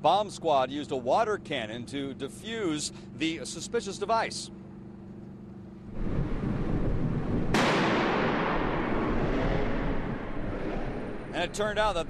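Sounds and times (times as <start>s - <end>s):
loud echoing blast: 5.9s - 12.0s
steady rushing noise: 5.9s - 12.0s.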